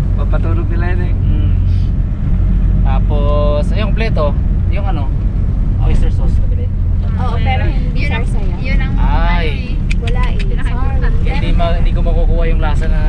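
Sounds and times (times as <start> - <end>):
passengers talking: 0.0 - 2.0, 2.9 - 13.0
van engine and road rumble: 0.0 - 13.0.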